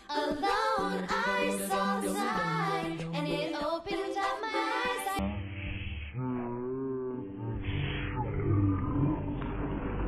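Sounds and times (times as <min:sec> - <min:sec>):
woman singing: 0:00.0 - 0:05.2
deep slowed-down roar: 0:05.2 - 0:10.0.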